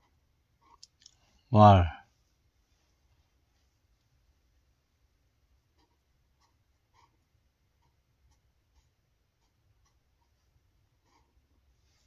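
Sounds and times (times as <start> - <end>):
low room hum: 0.0 - 12.0
pen scratching on paper: 5.8 - 7.2.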